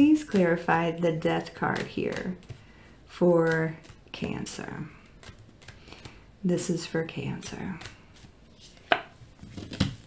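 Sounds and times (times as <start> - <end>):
faint card handling sounds: 0.1 - 6.3, 7.1 - 10.0.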